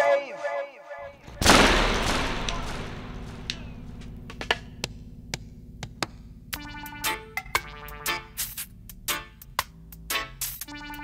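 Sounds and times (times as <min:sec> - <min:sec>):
deep booming hit: 0:01.1 - 0:06.3
low hum: 0:01.1 - 0:10.1.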